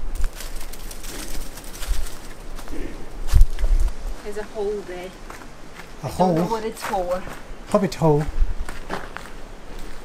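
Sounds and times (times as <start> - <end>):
footsteps crunching through dry leaves: 0.0 - 10.0.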